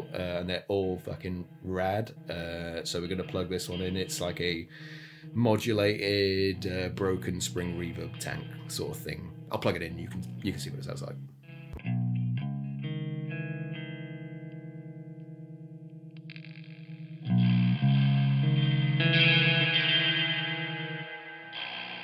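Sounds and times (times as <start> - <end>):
electric guitar chords with reverb: 0.0 - 22.0.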